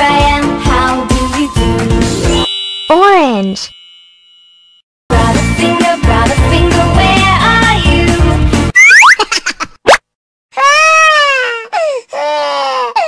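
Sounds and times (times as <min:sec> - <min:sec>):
children's song backing music: 0:00.0 - 0:02.3, 0:05.1 - 0:08.7
rising cartoon sound effects: 0:08.8 - 0:09.2
baby crying: 0:10.6 - 0:13.0.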